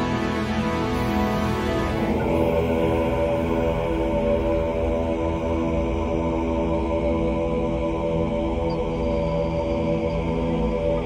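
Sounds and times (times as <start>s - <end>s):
droning held chord: 0.0s - 11.0s.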